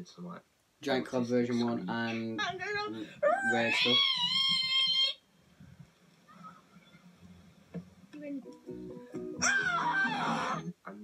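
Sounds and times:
acoustic guitar music: 0:08.1 - 0:10.8.

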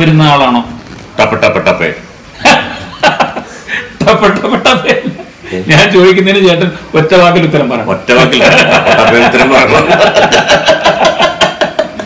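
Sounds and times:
men laughing heartily: 0:02.4 - 0:05.5, 0:08.3 - 0:12.0.

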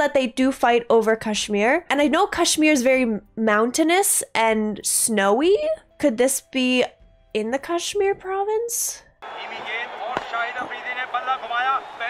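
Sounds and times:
bat striking ball: 0:09.2 - 0:12.0
crowd noise: 0:09.2 - 0:12.0
excited commentator speaking: 0:09.2 - 0:12.0.

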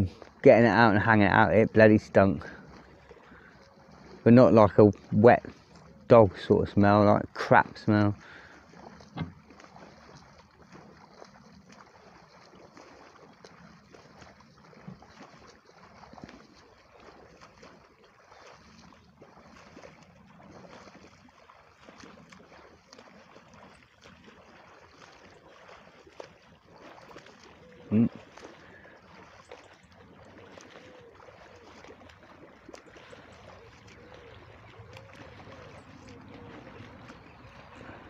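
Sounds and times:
faint waterside ambience: 0:00.0 - 0:38.0.

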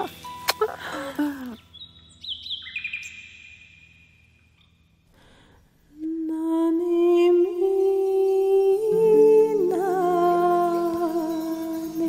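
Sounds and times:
woman humming: 0:00.0 - 0:01.7, 0:05.9 - 0:12.0.

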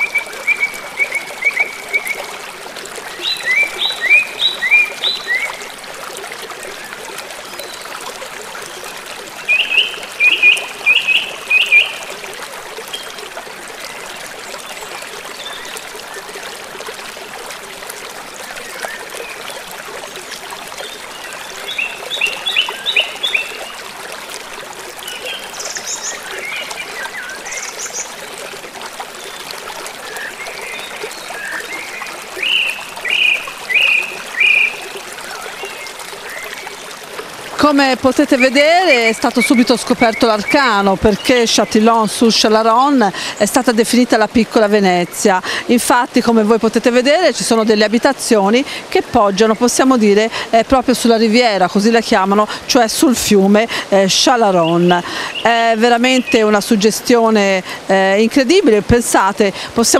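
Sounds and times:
songbird chirping: 0:00.0 - 0:02.4, 0:03.0 - 0:05.7, 0:08.7 - 0:12.2, 0:18.5 - 0:23.8, 0:25.0 - 0:36.9, 0:37.7 - 0:42.2, 0:54.4 - 0:57.4
river water rushing over weir: 0:00.0 - 0:59.9.

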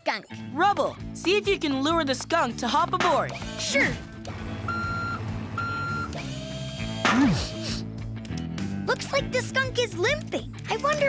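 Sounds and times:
background music: 0:00.0 - 0:11.0
long electronic warning beeps: 0:04.4 - 0:07.0.

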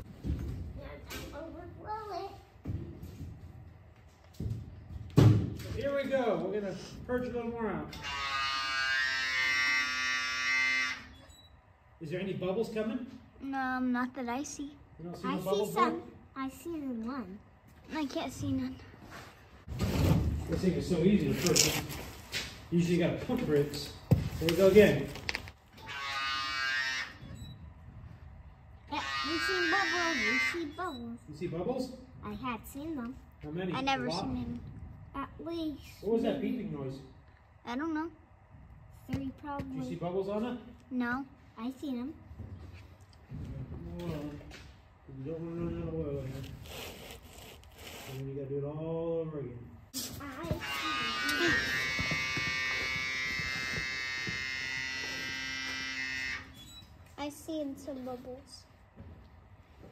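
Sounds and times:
electric pump motor buzzing: 0:07.9 - 0:11.3, 0:25.7 - 0:27.8, 0:28.9 - 0:30.8, 0:50.2 - 0:56.9.

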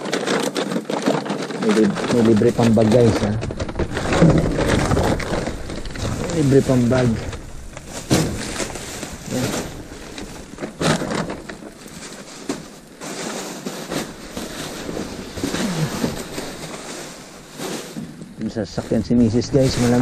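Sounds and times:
plastic bags rustling and crinkling: 0:00.0 - 0:20.0
knocks in dumpster: 0:07.9 - 0:09.9.

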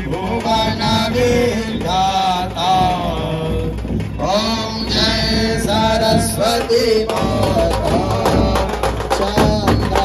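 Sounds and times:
person singing devotional chant: 0:00.0 - 0:10.0.

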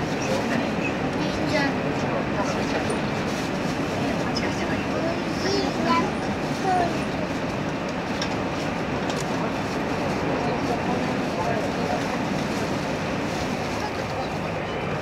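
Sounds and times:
train rumbling along track: 0:00.0 - 0:15.0.

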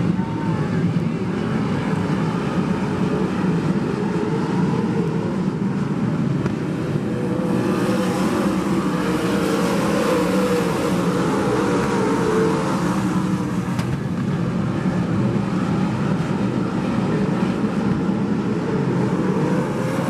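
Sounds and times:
race car engines running: 0:00.0 - 0:20.0.

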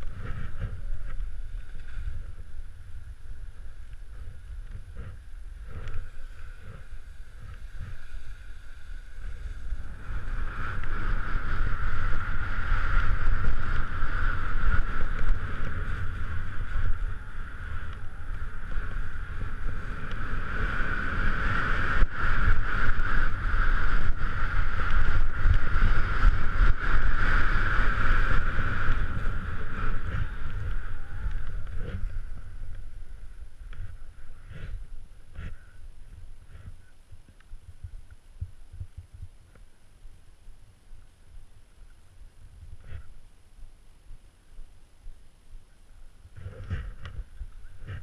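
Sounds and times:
skis scraping over snow: 0:00.0 - 0:36.8
wind rushing over microphone: 0:00.0 - 0:48.0.

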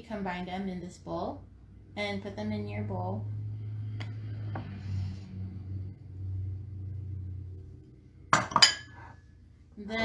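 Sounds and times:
low steady hum: 0:00.0 - 0:10.0
mixing bowls clinking: 0:08.3 - 0:09.2.

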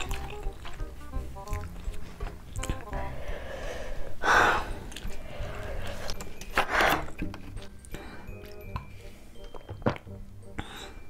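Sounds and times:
background music: 0:00.0 - 0:11.0
person breathing sharply: 0:03.2 - 0:07.1.

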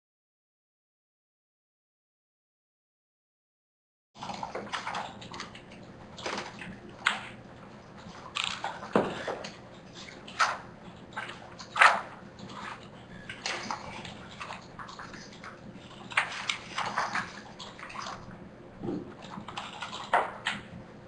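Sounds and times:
computer keyboard typing: 0:19.2 - 0:20.7.

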